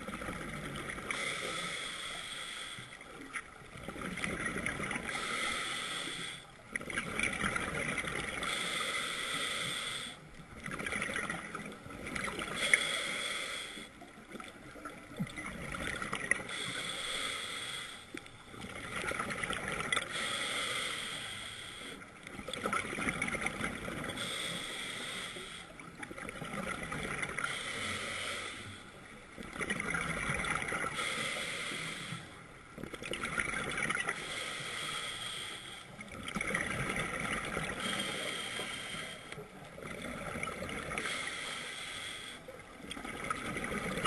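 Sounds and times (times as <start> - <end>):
regulator inhale hiss: 1.0 - 3.2, 5.0 - 6.6, 8.3 - 10.3, 12.5 - 14.1, 16.4 - 18.2, 20.0 - 22.1, 24.0 - 25.9, 27.3 - 29.1, 30.4 - 32.5, 34.0 - 36.0, 37.5 - 39.5, 40.8 - 42.6
exhaled bubbles underwater: 3.2 - 5.3, 6.7 - 8.5, 10.5 - 12.6, 14.0 - 16.6, 18.5 - 20.2, 22.2 - 24.2, 25.8 - 27.6, 29.4 - 31.0, 32.7 - 34.2, 36.0 - 37.9, 39.7 - 41.1, 42.8 - 44.0.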